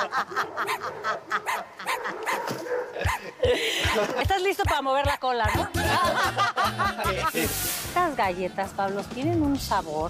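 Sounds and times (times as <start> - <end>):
dog barking and yipping: 0.1 - 5.8.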